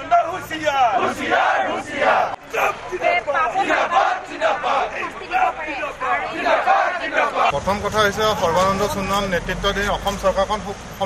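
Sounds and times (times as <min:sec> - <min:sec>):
crowd shouting slogans: 0:00.0 - 0:07.6.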